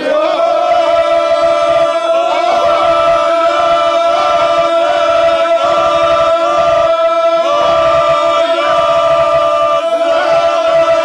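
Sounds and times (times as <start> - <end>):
men singing unaccompanied: 0.0 - 11.0.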